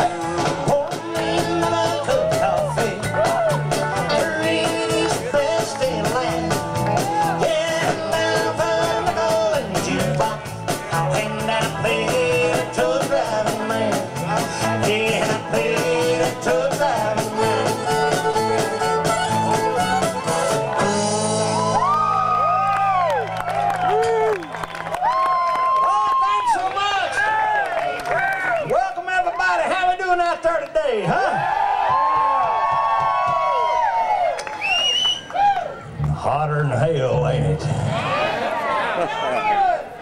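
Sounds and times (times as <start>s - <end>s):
drum kit: 0.0s - 23.0s
electric guitars: 0.0s - 25.7s
bass: 0.0s - 38.4s
fiddle: 17.3s - 20.9s.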